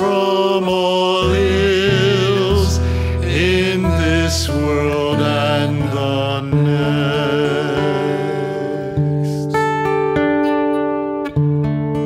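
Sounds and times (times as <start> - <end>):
man singing a hymn: 0.0 - 9.6
strummed acoustic guitar: 0.0 - 12.0.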